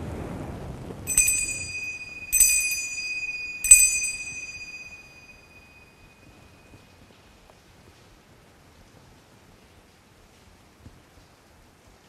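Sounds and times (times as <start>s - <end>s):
altar bell ringing: 1.1s - 6.4s.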